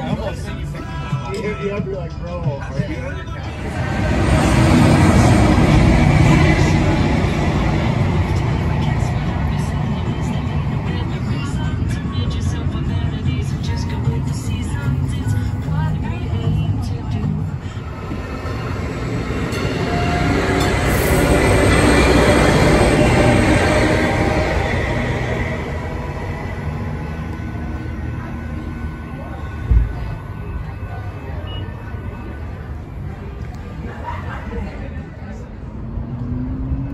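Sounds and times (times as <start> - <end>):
diesel train rumbling past: 0.0 - 36.9.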